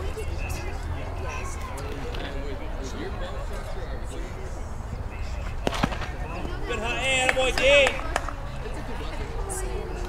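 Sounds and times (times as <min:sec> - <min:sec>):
background voices and chatter: 0:00.0 - 0:10.0.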